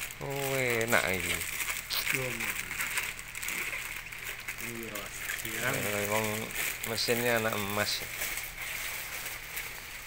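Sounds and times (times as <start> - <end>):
person speaking: 0.2 - 3.0, 4.6 - 8.2.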